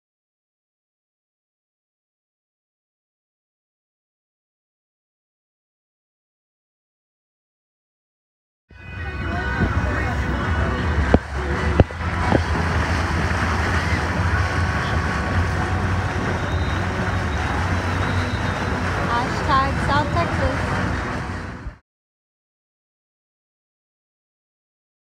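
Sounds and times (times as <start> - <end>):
motorboat motor droning: 8.7 - 21.8
rushing water: 8.8 - 21.8
wind on microphone: 9.1 - 21.8
high wavering calls: 16.2 - 18.8.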